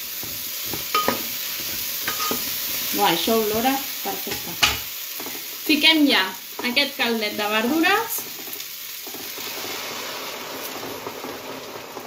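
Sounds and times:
pot sizzling and bubbling: 0.0s - 12.0s.

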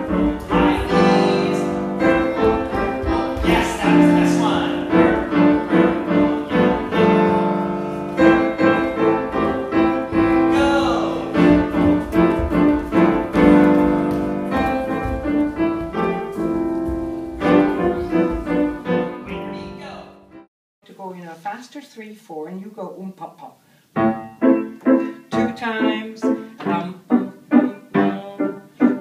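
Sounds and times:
grand piano playing: 0.0s - 20.5s, 24.0s - 29.0s.

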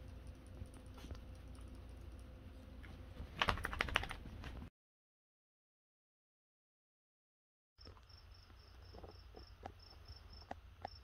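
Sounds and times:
steady low hum: 0.0s - 4.7s
dog claws clicking and scratching: 3.4s - 4.6s.

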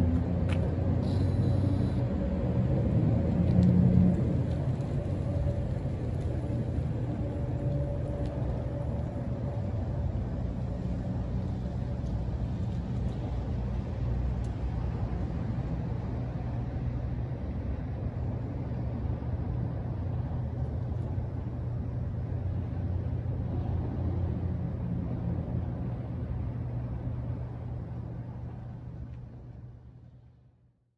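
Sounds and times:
low outdoor rumble: 0.0s - 30.9s.

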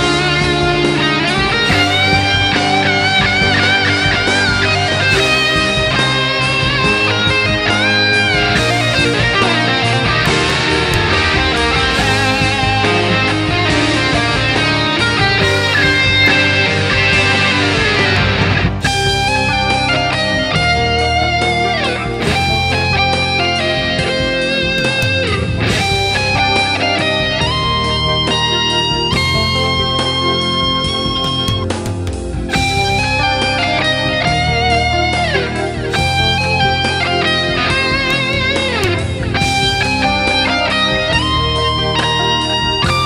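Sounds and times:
bass guitar: 0.0s - 43.0s
distorted electric guitar melody: 0.0s - 43.0s
keyboard: 0.0s - 43.0s
rock drums: 0.0s - 43.0s
cymbal and drum accents: 1.4s - 28.0s.

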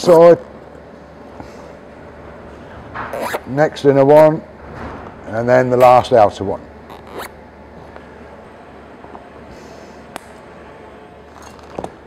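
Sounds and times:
cable tie zipping: 3.1s - 3.5s, 6.9s - 7.4s.

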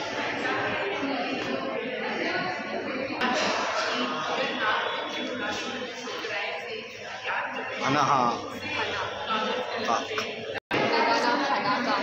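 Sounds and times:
indistinct chatter of people: 0.0s - 12.0s.

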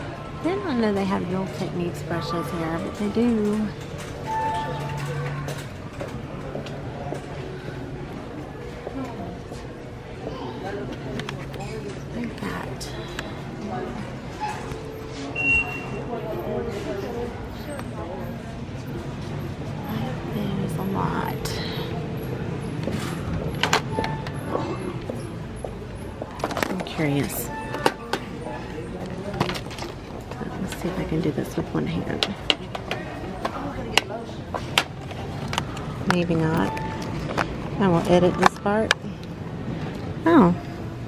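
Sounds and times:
faint distant voices: 0.0s - 41.0s.

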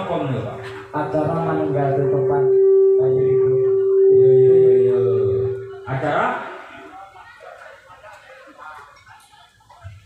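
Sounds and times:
steady pitched tone: 0.0s - 6.9s.

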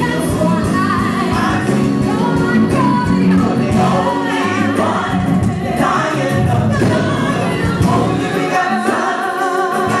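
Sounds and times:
gospel group singing in harmony: 0.0s - 10.0s.

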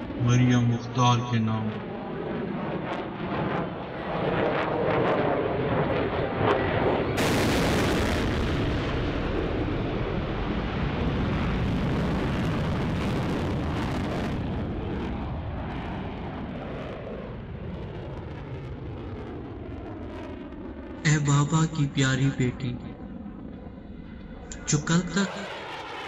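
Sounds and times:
fighter jet flying past: 1.6s - 21.0s, 22.8s - 26.0s.

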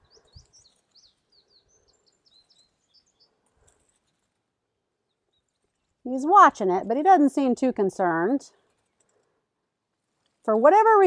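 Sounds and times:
faint bird chirps: 0.0s - 3.4s.

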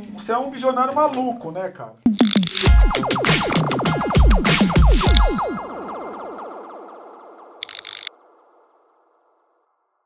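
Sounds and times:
sharp shutter-like clicks: 2.1s - 2.8s, 5.0s - 5.4s, 7.6s - 8.1s
electronic falling pitch sweeps: 2.1s - 9.0s.

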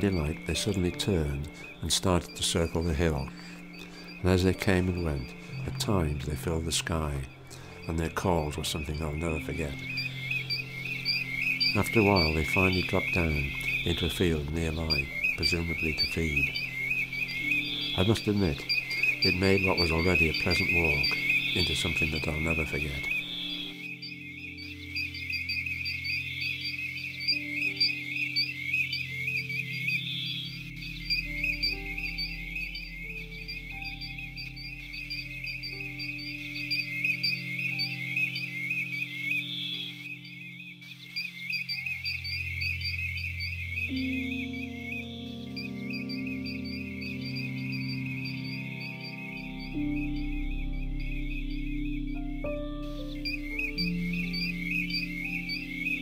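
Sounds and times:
flock of birds calling: 0.0s - 56.0s
slow background music: 0.0s - 56.0s.

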